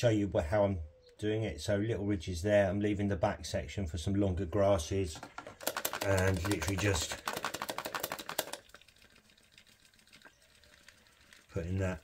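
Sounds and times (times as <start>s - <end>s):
fast run of sharp clicks: 5.1s - 12.0s.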